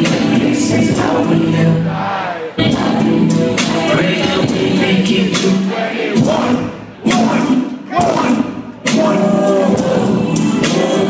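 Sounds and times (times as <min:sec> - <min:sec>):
rapping over a loud beat: 0:00.0 - 0:11.0.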